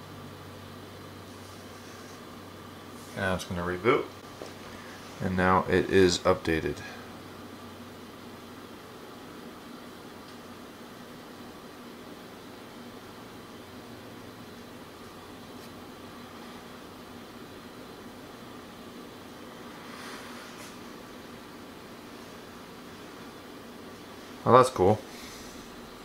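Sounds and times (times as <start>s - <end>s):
background hiss: 15.5s - 26.0s.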